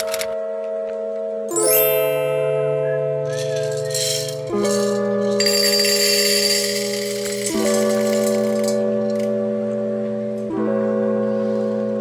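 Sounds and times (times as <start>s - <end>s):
slow keyboard chords: 0.0s - 12.0s
coffee beans poured into metal pitcher: 3.3s - 9.3s.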